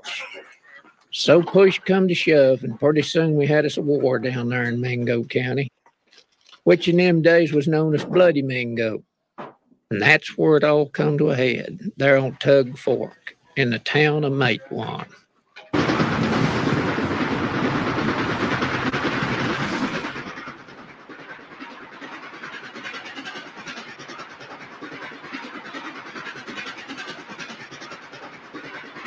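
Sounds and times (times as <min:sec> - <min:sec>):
train rattling: 0:01.1 - 0:05.7, 0:06.5 - 0:09.0, 0:09.9 - 0:29.0.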